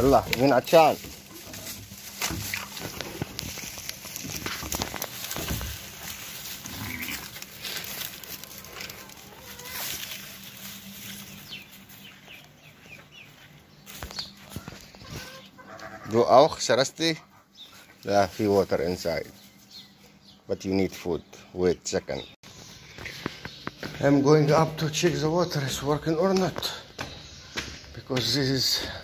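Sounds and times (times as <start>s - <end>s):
goats rustling in straw: 0.0s - 16.0s, 17.7s - 19.9s
faint animal calls: 6.6s - 10.4s, 14.4s - 16.2s.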